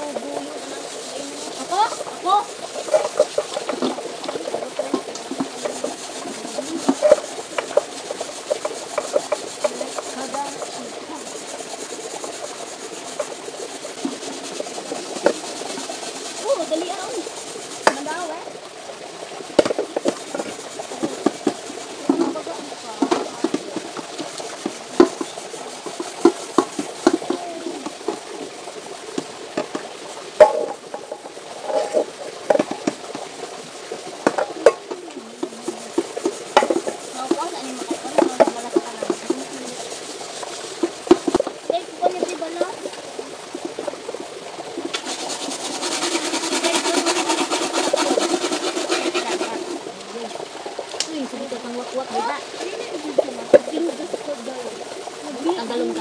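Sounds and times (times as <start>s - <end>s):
pots knocking: 0.0s - 56.0s
pots scraping and rubbing: 0.0s - 56.0s.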